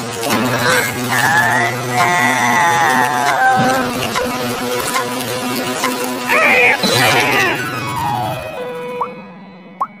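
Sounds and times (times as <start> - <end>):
cartoon music with warped voice: 0.0 - 9.1.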